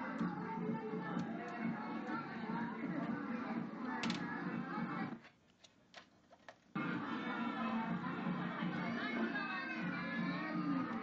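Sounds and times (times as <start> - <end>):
party music through tv speaker: 0.0 - 5.3, 6.7 - 11.0
crowd noise: 0.0 - 5.4, 6.7 - 11.0.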